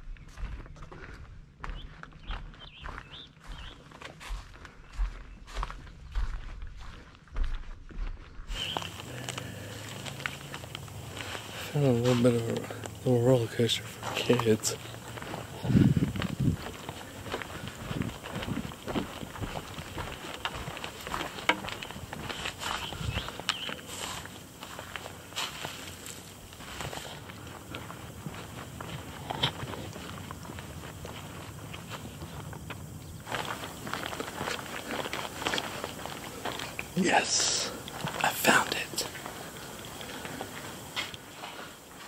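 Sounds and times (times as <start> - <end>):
footsteps on wooden decking: 0.0 - 42.0.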